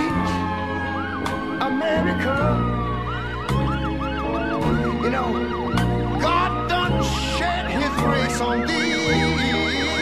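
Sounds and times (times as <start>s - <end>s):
background music: 0.0s - 10.0s
fire engine siren yelp: 0.0s - 10.0s.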